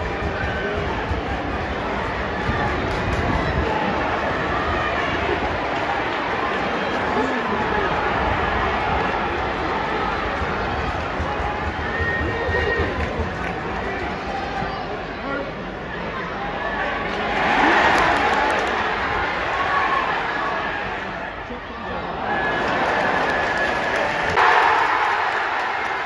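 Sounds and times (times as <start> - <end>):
stadium crowd babble: 0.0 - 26.0.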